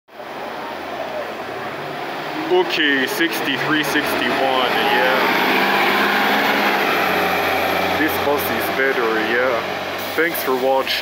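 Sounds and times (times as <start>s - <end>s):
bus engine idling: 0.1s - 11.0s.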